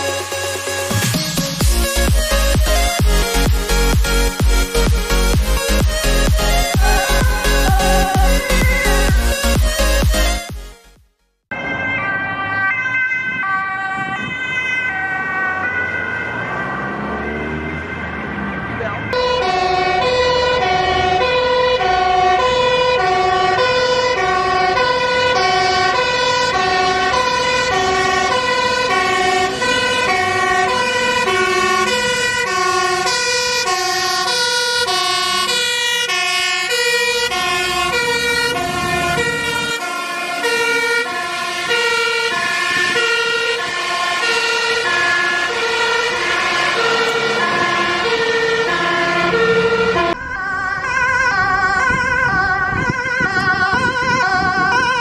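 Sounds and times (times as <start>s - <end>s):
two-tone ambulance siren: 0.0s - 10.7s, 11.5s - 55.0s
passing vehicle: 4.6s - 10.3s, 11.6s - 55.0s.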